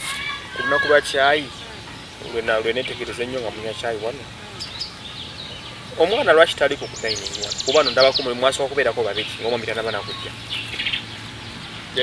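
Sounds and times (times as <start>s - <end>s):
steady low hum: 0.0s - 12.0s
bird chirping: 0.2s - 12.0s.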